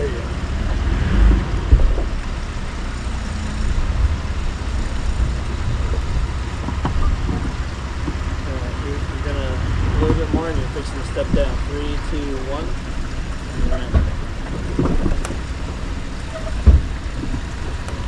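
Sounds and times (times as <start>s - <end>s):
engine running low: 0.0s - 18.0s
truck knocking over rocks: 13.8s - 18.0s.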